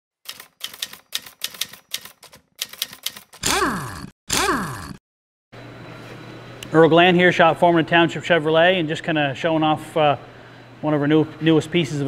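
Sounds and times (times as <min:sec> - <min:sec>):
typewriter keys clacking: 0:00.2 - 0:03.4.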